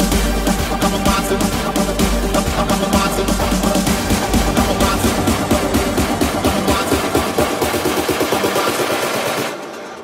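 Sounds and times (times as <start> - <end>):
electronic dance music: 0.0 - 10.0
rapid drum roll: 0.0 - 10.0
synths: 0.0 - 10.0.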